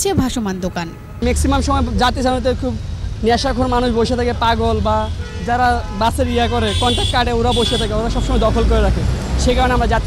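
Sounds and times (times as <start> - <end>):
road traffic rumble: 0.0 - 10.0
man speaking: 1.2 - 10.0.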